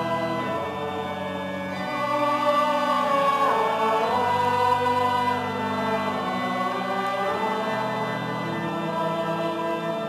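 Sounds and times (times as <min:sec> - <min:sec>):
choir singing a chant: 0:00.0 - 0:10.0.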